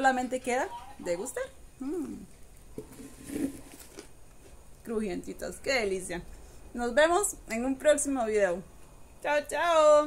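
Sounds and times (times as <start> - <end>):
woman humming mm: 1.8 - 2.3.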